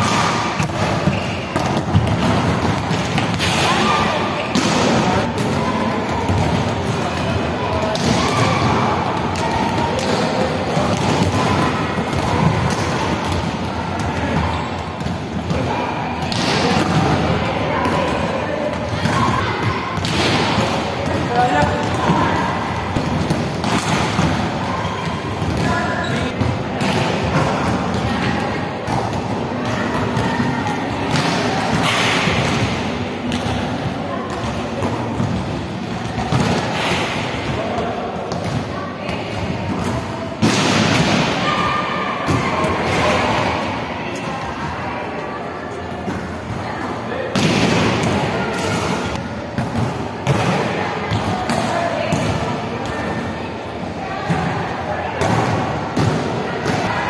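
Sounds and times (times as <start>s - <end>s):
balls thudding on court floor: 0.0s - 7.3s
volleyballs being hit: 0.0s - 41.4s
balls bouncing on court floor: 0.0s - 44.8s, 45.9s - 53.2s, 55.2s - 56.9s.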